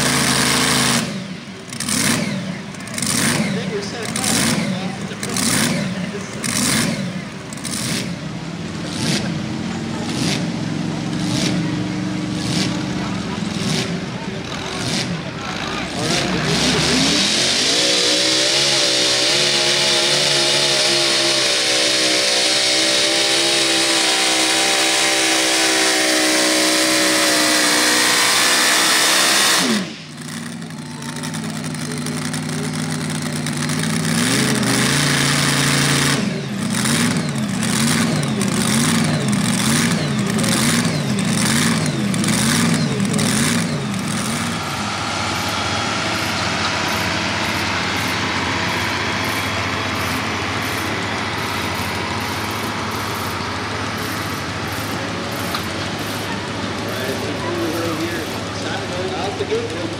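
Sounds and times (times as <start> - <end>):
engine idling roughly: 0.0 - 59.9
supercharged engine revving: 0.0 - 59.9.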